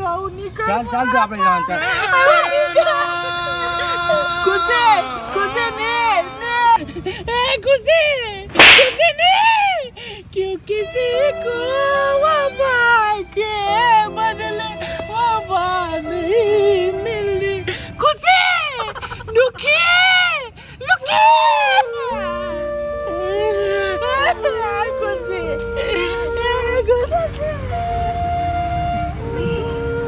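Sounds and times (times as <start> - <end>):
man wailing: 1.7 - 6.9
loud swish: 8.6 - 9.1
background music held notes: 10.7 - 18.0, 21.4 - 30.0.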